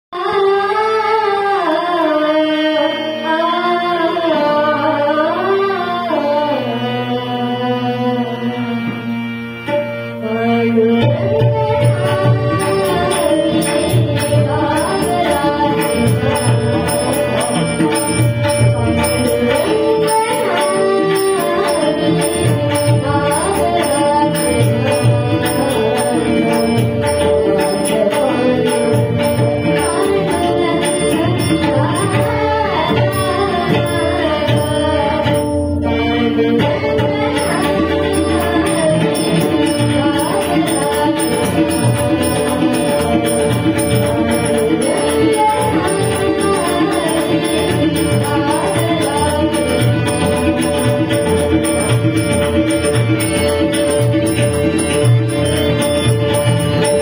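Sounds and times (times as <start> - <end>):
harmonium: 0.1 - 57.0
girl singing devotional song: 0.2 - 8.8, 10.3 - 53.2
hand drums keeping rhythm: 11.3 - 35.7, 36.6 - 57.0.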